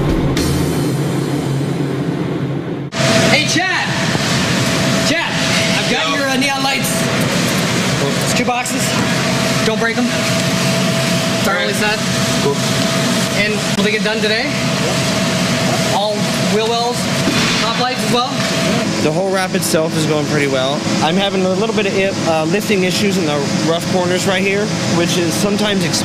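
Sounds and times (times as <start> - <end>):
low hum: 0.0 - 23.7
people talking: 3.2 - 4.2, 5.0 - 10.4, 11.3 - 26.0.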